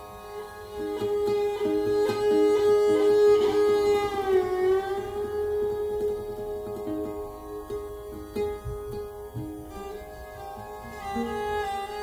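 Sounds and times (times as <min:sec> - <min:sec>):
viola bowed note: 0:00.0 - 0:12.0.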